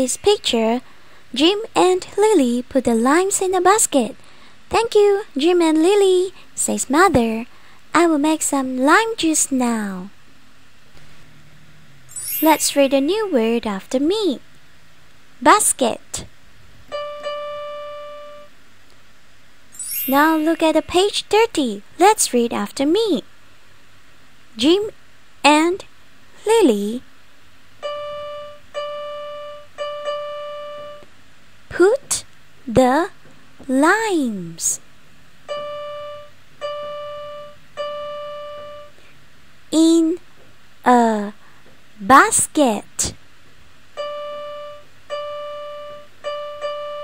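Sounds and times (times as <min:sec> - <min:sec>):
faint room noise: 0:00.0 - 0:47.0
sustained electronic keyboard note: 0:16.9 - 0:18.5, 0:27.8 - 0:31.0, 0:35.5 - 0:38.9, 0:44.0 - 0:47.0.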